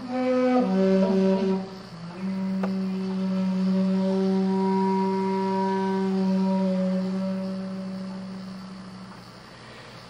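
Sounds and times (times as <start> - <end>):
bamboo flute long held notes: 0.0 - 10.0.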